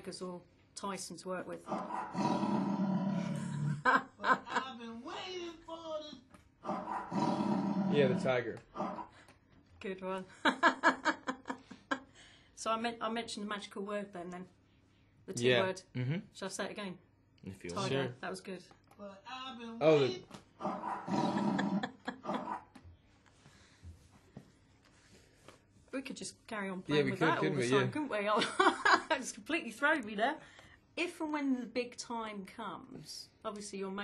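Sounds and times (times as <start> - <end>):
man imitating tiger roar: 7.1 - 8.3.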